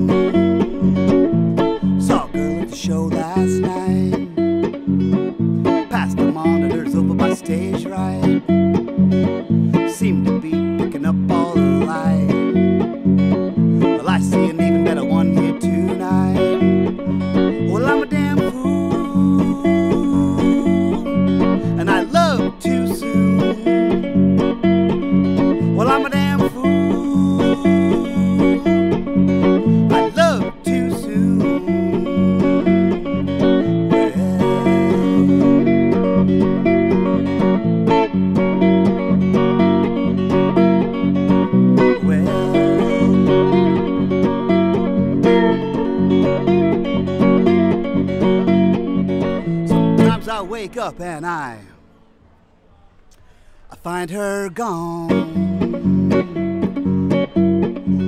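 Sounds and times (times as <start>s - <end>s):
archtop guitar picked rhythm: 0.0s - 52.2s, 53.1s - 58.0s.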